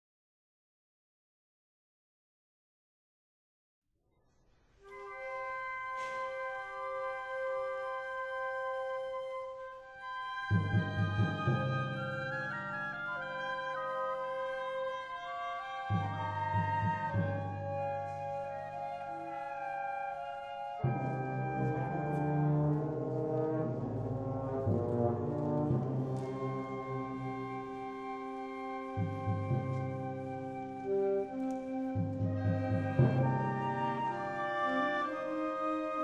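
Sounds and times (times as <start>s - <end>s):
low brass chords: 20.8s - 28.0s
concert band long held notes: 20.8s - 36.0s.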